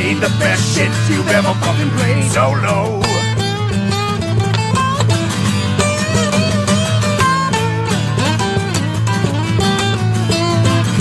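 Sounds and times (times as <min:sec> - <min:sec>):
acoustic guitar picked notes: 0:00.0 - 0:11.0.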